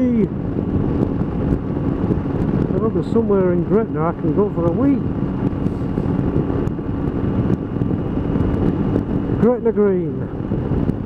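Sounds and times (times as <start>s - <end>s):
motorcycle engine drone: 0.0s - 11.0s
wind buffeting microphone: 0.0s - 11.0s.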